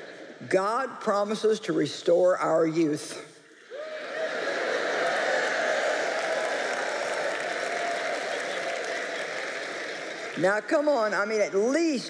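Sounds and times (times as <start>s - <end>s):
audience applauding and cheering: 3.7s - 11.1s.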